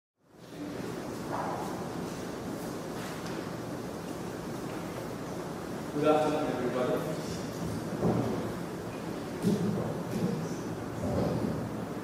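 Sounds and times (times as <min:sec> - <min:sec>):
steady hiss of room tone: 0:00.2 - 0:12.0.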